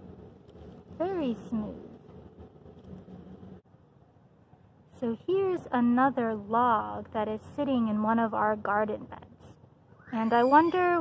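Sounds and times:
low hum: 0.0s - 5.2s
outdoor background rumble: 0.0s - 11.0s.

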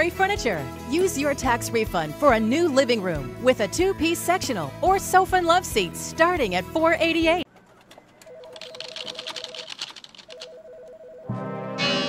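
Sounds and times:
rapid keyboard typing: 7.5s - 11.0s.

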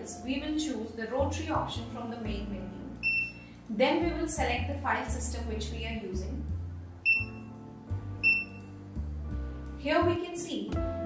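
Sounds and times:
background music with bass: 0.0s - 11.0s
high electronic beeps: 3.0s - 3.4s, 7.0s - 7.5s, 8.2s - 8.7s.

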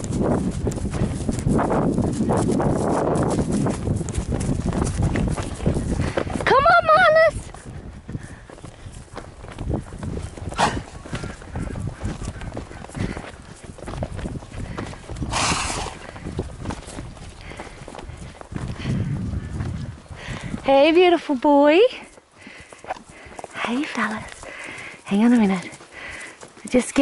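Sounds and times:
horses moving on grass: 0.0s - 27.0s.

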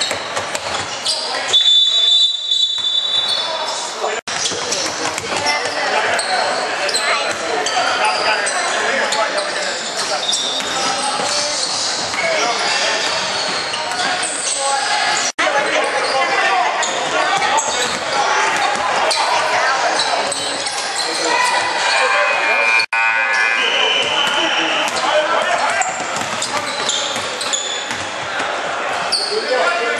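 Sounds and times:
players shouting and chatter: 0.0s - 29.9s.

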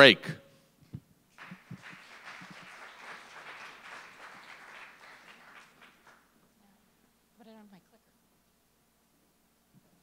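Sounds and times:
audience applauding: 1.4s - 6.3s.

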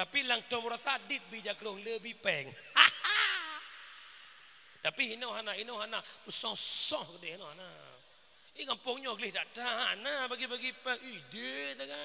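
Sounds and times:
man speaking over a microphone: 0.0s - 2.6s, 4.8s - 8.0s, 8.6s - 12.0s.

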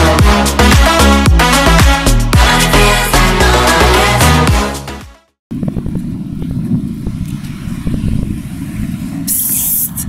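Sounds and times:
traffic rumble: 5.5s - 10.0s
loud hiss: 9.3s - 10.0s.

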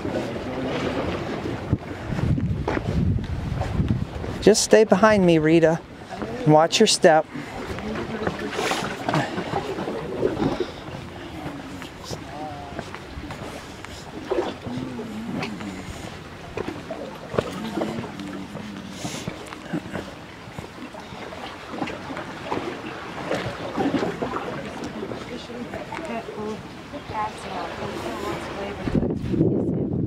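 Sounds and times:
wind: 0.0s - 30.0s
indistinct voices: 14.4s - 16.2s.

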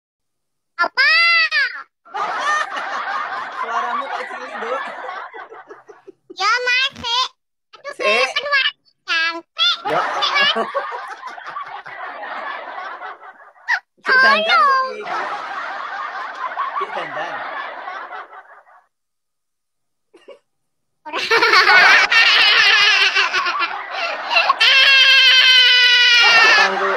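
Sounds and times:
dense laughter: 2.1s - 6.2s, 9.9s - 13.9s, 15.1s - 18.9s, 21.1s - 26.9s
people snickering and chuckling: 2.1s - 6.3s, 9.8s - 13.9s, 14.9s - 18.9s, 21.1s - 26.9s.

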